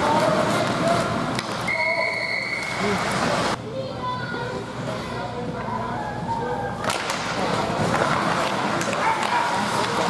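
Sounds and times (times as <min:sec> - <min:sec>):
crack of hockey sticks and puck: 0:06.8 - 0:10.0.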